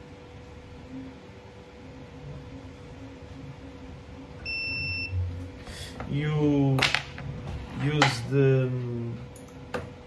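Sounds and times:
faint electrical hum: 0:00.0 - 0:10.0
electronic beep: 0:04.4 - 0:05.2.

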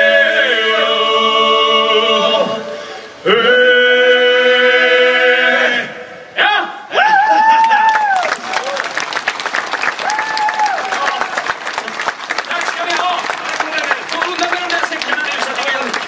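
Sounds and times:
long held shout: 0:06.4 - 0:08.9, 0:10.0 - 0:11.4
audience applauding: 0:07.4 - 0:16.0.

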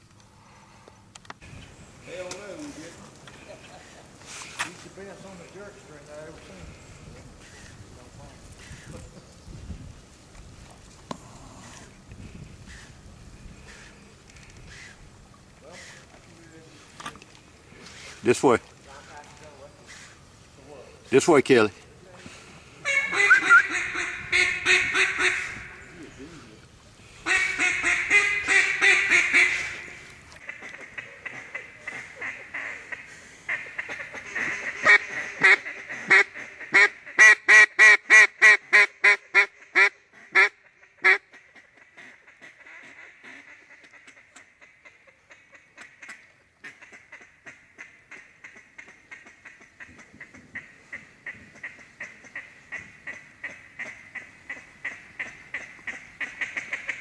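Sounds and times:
duck call feed chatter: 0:22.2 - 0:25.8, 0:27.2 - 0:57.0
duck call quacks: 0:22.8 - 0:25.8, 0:27.2 - 0:57.0.

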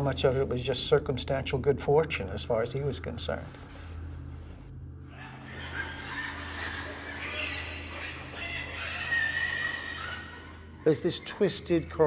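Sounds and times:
wavering animal call: 0:05.1 - 0:11.5.

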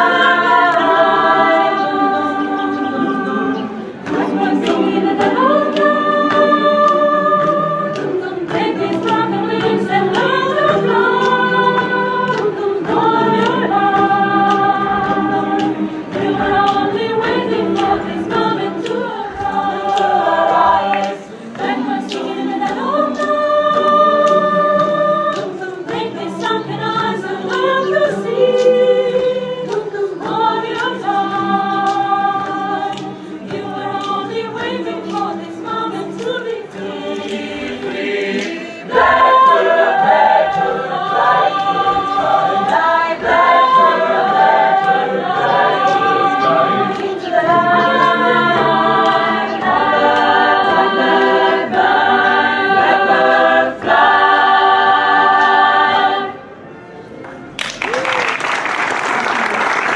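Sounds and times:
mixed choir singing a cappella: 0:00.0 - 0:56.7.

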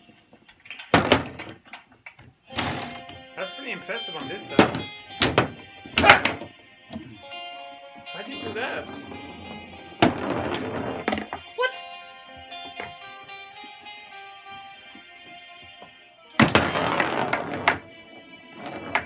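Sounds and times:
foosball rods and ball rattling: 0:00.0 - 0:03.2, 0:04.2 - 0:07.1, 0:08.3 - 0:11.5, 0:12.6 - 0:13.0, 0:16.4 - 0:19.0
background music: 0:00.0 - 0:19.0.

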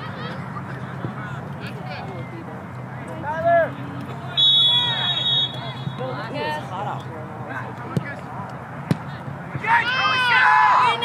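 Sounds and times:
voices shouting: 0:03.2 - 0:06.6, 0:09.6 - 0:11.0
referee's whistle blast: 0:04.4 - 0:06.0.

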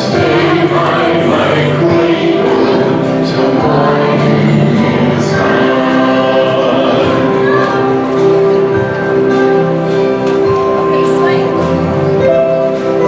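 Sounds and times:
children's choir singing: 0:00.0 - 0:09.8.

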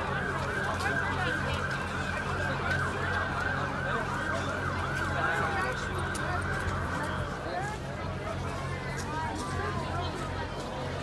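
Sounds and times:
crowd noise: 0:00.0 - 0:11.0
siren wailing: 0:00.1 - 0:07.0.

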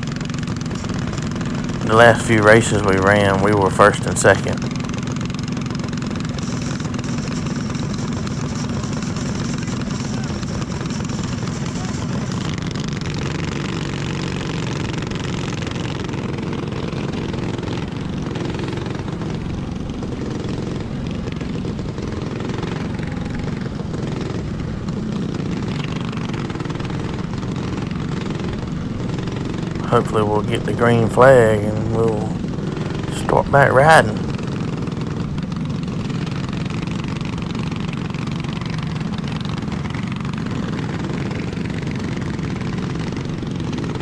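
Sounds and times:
kart engine running steadily: 0:00.0 - 0:44.0.

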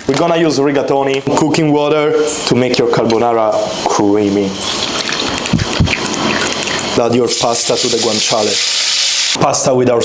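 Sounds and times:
water pouring into glass bowl: 0:04.6 - 0:08.6.

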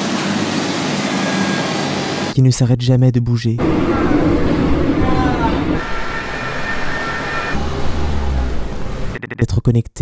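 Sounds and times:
low vehicle rumble: 0:03.6 - 0:09.2
high two-tone whine: 0:03.6 - 0:09.4.

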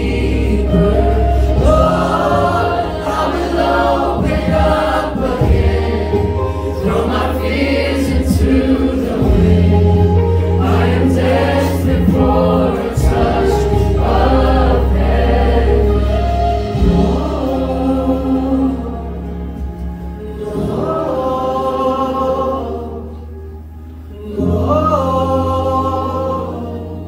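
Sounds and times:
bass line: 0:00.0 - 0:27.0
voices singing together: 0:00.0 - 0:27.0.

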